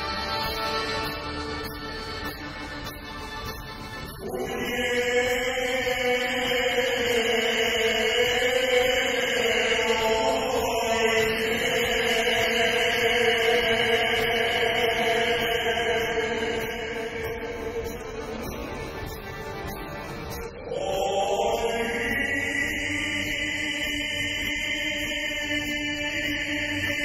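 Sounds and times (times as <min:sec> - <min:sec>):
string orchestra: 0:00.0 - 0:27.0
man singing long note: 0:04.2 - 0:18.8, 0:20.6 - 0:27.0.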